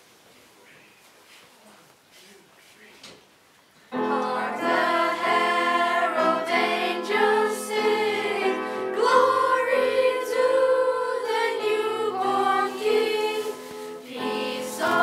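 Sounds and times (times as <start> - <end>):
children's choir singing: 4.0 - 15.0
piano accompaniment: 4.0 - 15.0.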